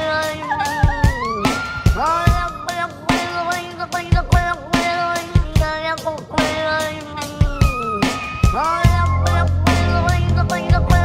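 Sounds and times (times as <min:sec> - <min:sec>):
band track with drum hits: 0:00.0 - 0:11.0.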